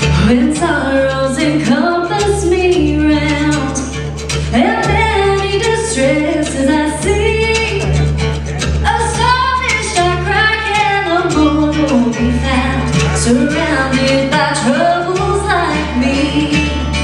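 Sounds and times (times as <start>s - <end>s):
woman singing: 0.0s - 8.0s, 8.8s - 17.0s
acoustic guitar: 0.0s - 17.0s
mandolin: 0.0s - 17.0s
upright bass notes: 0.0s - 17.0s.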